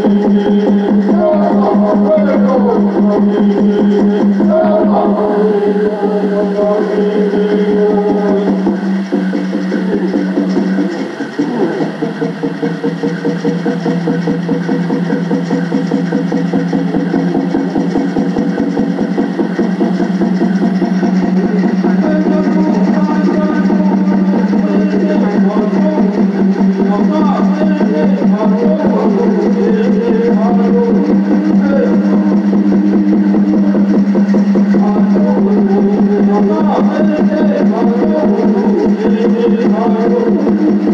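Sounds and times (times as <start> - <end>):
fast water-drum beat: 0.0 - 40.9
person singing steady tone: 0.0 - 40.9.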